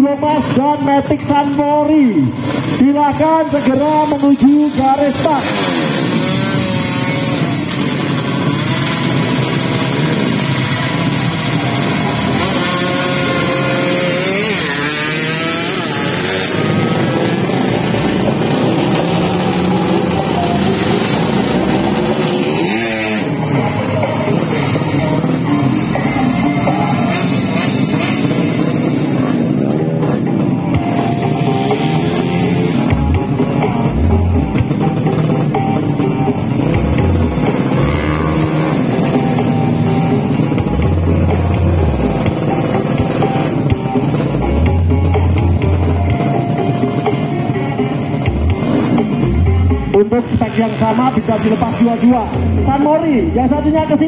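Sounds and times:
motorcycles revving: 0:00.0 - 0:54.0
motorcycle passing by: 0:02.3 - 0:54.0
music: 0:08.9 - 0:54.0.

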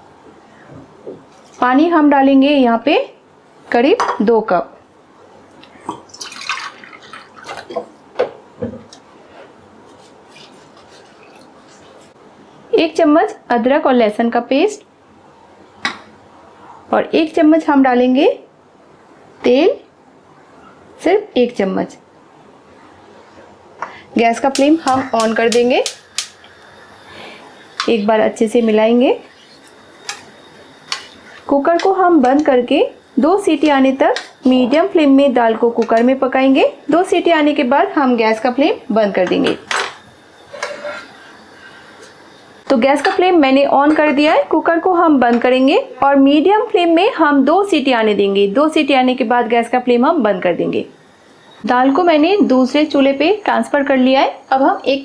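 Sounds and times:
water splashing and trickling: 0:06.1 - 0:07.8
metal spoon stirring in pot: 0:29.2 - 0:32.4, 0:40.4 - 0:41.9.

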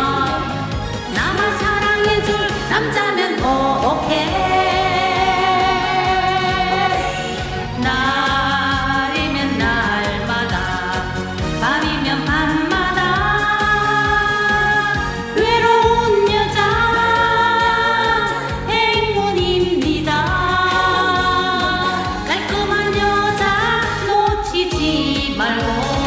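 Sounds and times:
amplified backing track with beat: 0:00.0 - 0:26.0
woman singing into microphone: 0:00.0 - 0:26.0.

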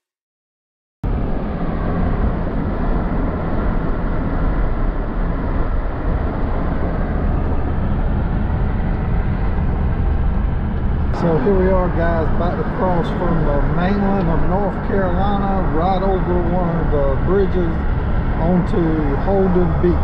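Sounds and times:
car interior driving rumble: 0:01.1 - 0:20.0.

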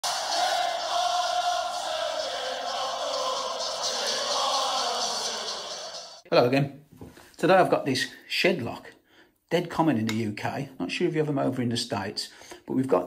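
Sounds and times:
crowd chanting: 0:00.0 - 0:06.2
music: 0:00.0 - 0:06.2.

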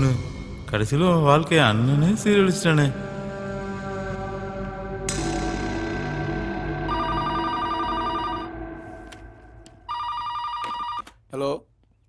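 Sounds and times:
film background music: 0:00.0 - 0:10.5
telephone ringing with trilling tone: 0:06.9 - 0:08.6, 0:09.9 - 0:11.1.

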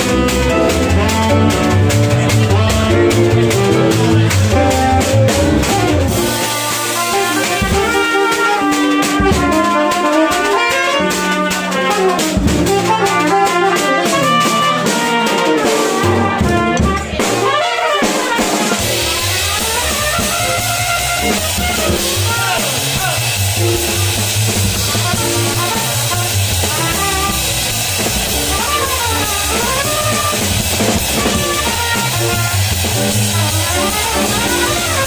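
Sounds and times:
double bass line: 0:00.0 - 0:35.0
drum kit with cymbals: 0:00.0 - 0:35.0
horn solo: 0:00.0 - 0:35.0.

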